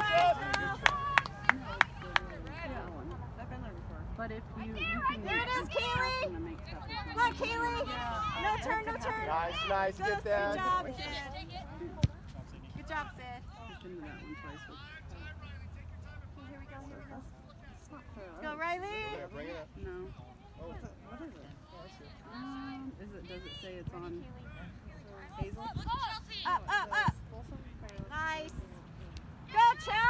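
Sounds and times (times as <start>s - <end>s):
people cheering: 0.0s - 2.4s.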